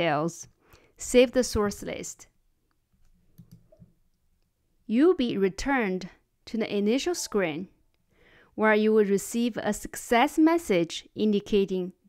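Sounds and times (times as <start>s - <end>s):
woman speaking: 0.0s - 2.3s, 4.9s - 7.8s, 8.6s - 12.0s.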